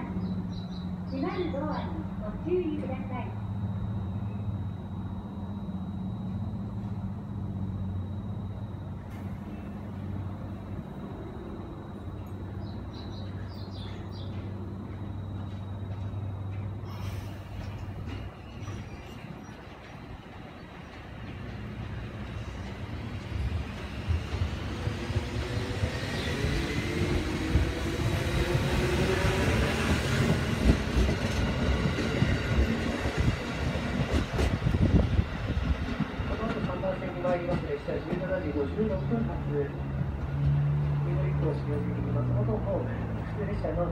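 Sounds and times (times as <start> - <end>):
electric train humming: 0.0 - 43.9.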